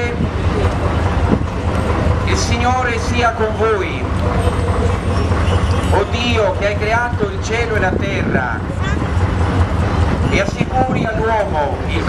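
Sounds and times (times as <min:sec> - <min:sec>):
engine idling: 0:00.0 - 0:12.0
faint crowd voices: 0:00.0 - 0:12.0.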